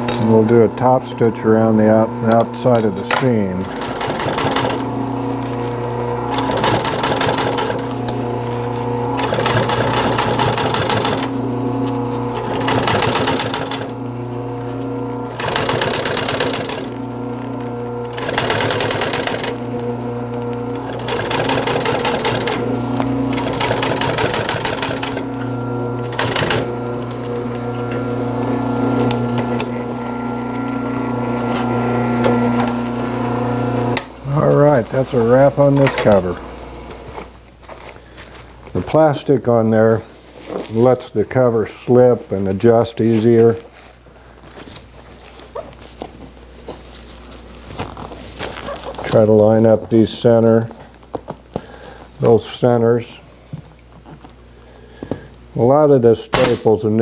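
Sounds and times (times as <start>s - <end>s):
sewing machine motor humming: 0.0s - 37.4s
sewing machine needle running: 1.8s - 31.3s.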